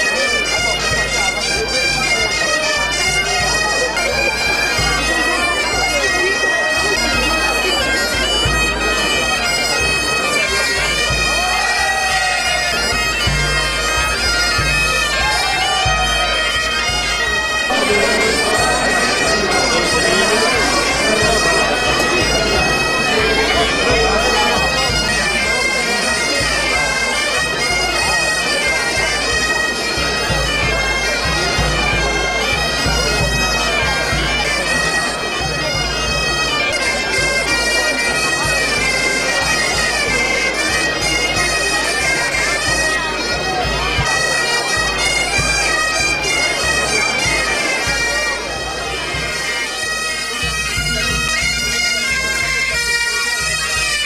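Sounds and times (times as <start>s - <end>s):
bagpipe music with drone: 0.0s - 54.0s
people talking: 0.0s - 54.0s.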